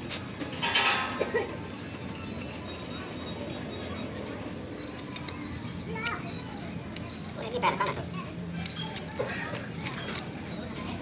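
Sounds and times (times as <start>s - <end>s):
chatter of children and people: 0.8s - 11.0s.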